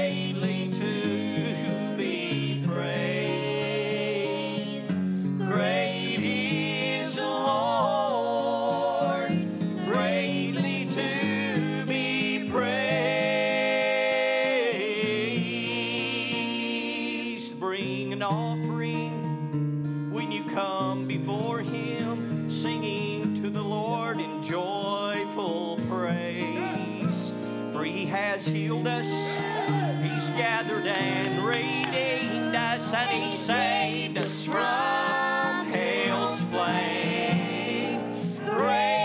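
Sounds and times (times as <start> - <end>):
person singing gospel song: 0.0 - 18.5, 20.2 - 39.0
acoustic guitar: 0.0 - 39.0.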